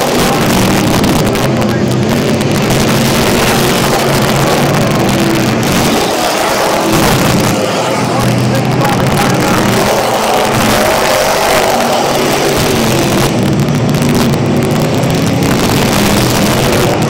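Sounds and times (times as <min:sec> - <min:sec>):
race car engines running loud: 0:00.0 - 0:17.0.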